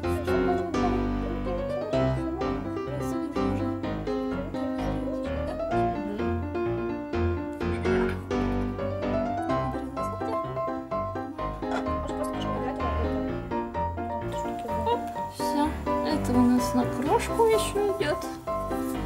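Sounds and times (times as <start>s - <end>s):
piano music with steady beat: 0.0s - 19.0s.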